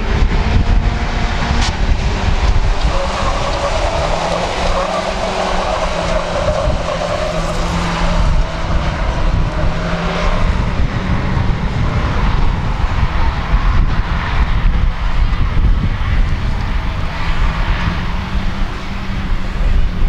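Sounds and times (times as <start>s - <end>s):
heavy low rumble: 0.0s - 6.8s
racing car engines running hard: 0.0s - 20.0s.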